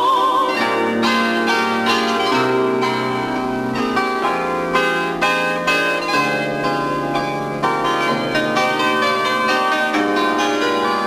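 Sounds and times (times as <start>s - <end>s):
plucked bandura chords: 0.0s - 11.0s.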